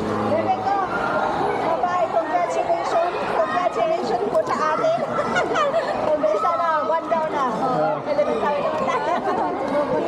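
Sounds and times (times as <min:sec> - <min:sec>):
lively chatter of voices: 0:00.0 - 0:10.0.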